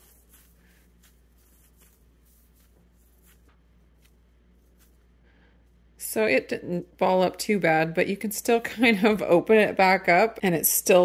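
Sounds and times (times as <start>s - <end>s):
bread squeezed in hands rustling: 0.0s - 6.0s.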